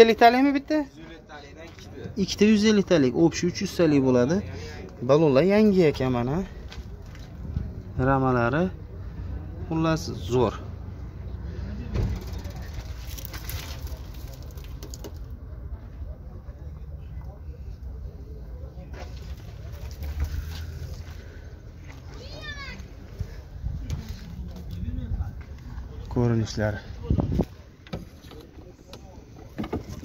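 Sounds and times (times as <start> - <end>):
faint indistinct voices: 10.6 - 30.0.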